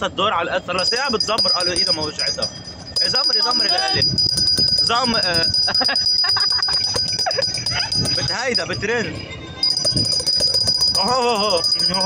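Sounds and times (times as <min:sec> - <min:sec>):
people laughing: 0:05.6 - 0:08.6.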